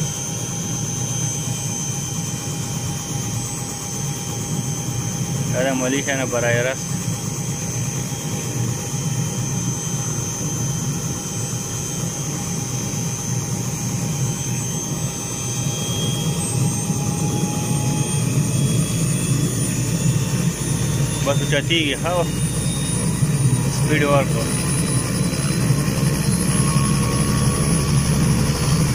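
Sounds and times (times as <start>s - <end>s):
helicopter rotor drone: 0.0s - 28.9s
high engine whine: 0.0s - 28.9s.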